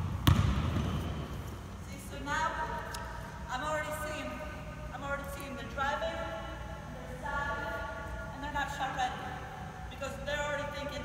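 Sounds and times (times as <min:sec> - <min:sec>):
person's voice in a large hall: 0:01.2 - 0:11.0.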